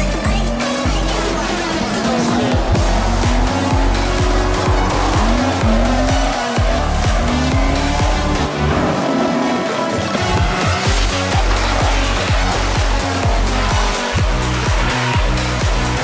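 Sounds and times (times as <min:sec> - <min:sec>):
car engines revving: 0:00.0 - 0:16.0
electronic dance music: 0:00.0 - 0:16.0.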